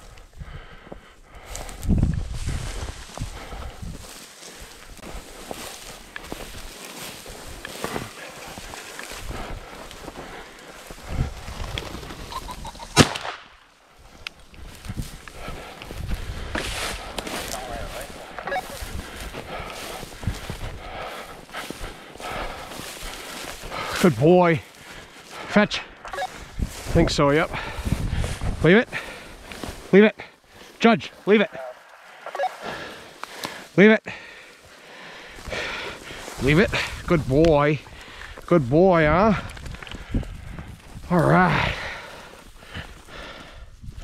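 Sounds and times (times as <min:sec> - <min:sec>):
dry grass rustling: 0:00.0 - 0:44.0
shotgun shot: 0:13.0 - 0:13.6.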